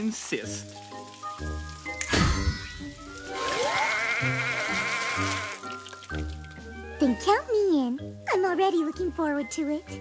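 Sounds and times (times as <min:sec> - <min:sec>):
light background music: 0:00.0 - 0:10.0
cartoon sheep bleating: 0:03.4 - 0:05.6.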